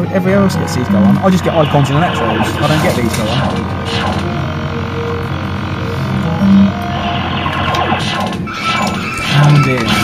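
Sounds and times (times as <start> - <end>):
steady electrical hum: 0.1 - 8.9
short electronic tones: 0.6 - 7.9.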